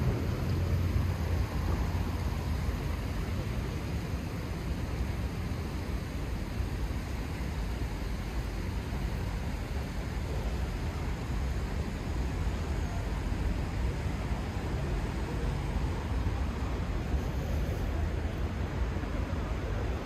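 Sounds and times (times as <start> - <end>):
distant traffic rumble: 0.0 - 20.0.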